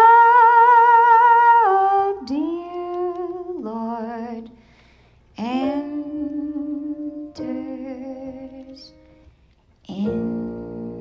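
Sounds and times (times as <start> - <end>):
woman singing alone: 0.0 - 4.6, 5.4 - 9.0, 9.9 - 11.0.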